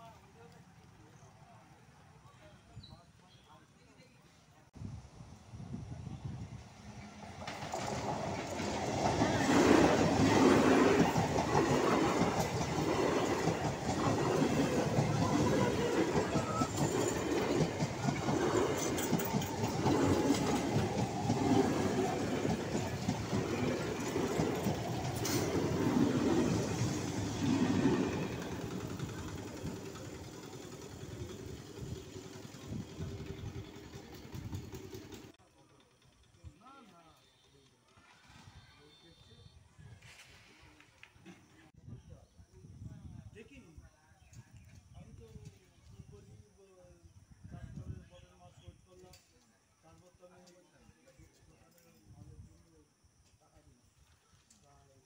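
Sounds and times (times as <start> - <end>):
train passing close by: 4.8 - 35.3
wheels clattering over rail joints: 7.2 - 31.7, 32.3 - 35.3.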